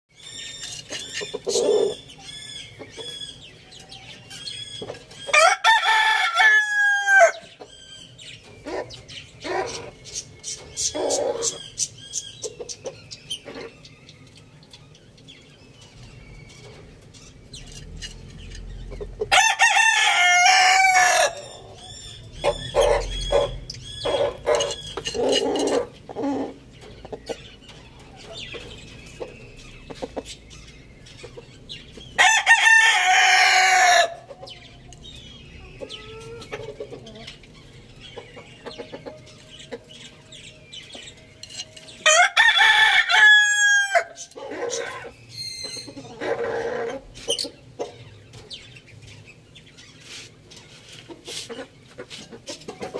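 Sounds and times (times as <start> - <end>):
rooster crowing: 5.3 - 7.5, 19.3 - 21.6, 32.2 - 34.2, 42.0 - 44.2.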